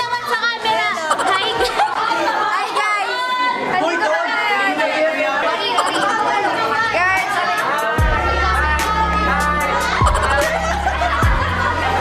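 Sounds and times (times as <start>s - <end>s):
young people chattering: 0.0s - 12.0s.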